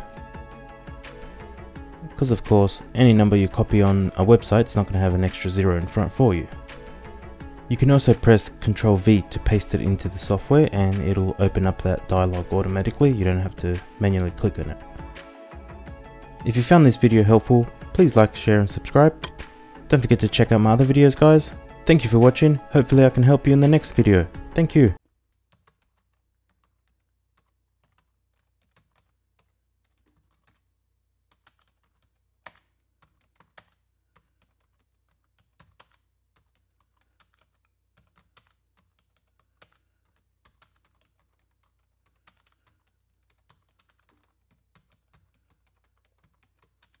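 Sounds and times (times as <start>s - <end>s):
computer keyboard typing: 25.5s - 30.7s, 31.3s - 47.0s.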